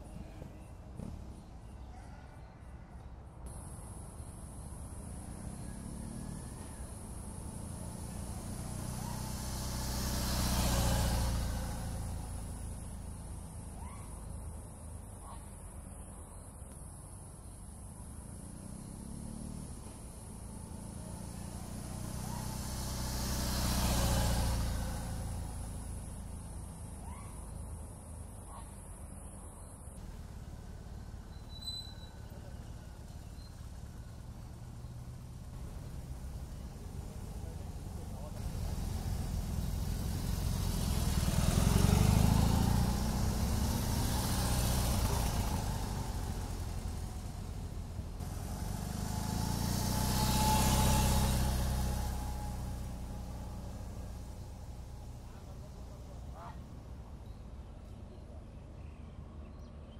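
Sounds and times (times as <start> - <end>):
motorcycle engine passing: 3.5 - 15.7, 17.4 - 29.2, 29.9 - 58.2.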